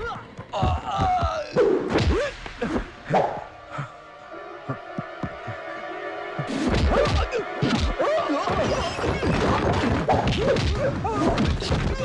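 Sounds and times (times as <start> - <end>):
background music held chord: 1.7 - 8.9.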